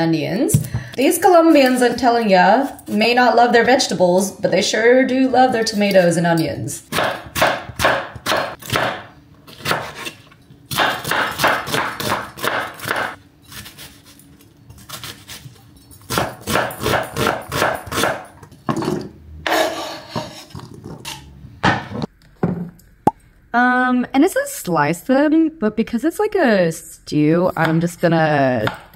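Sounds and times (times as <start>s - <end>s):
knife chopping on wooden board: 6.9s - 10.1s, 10.7s - 13.7s.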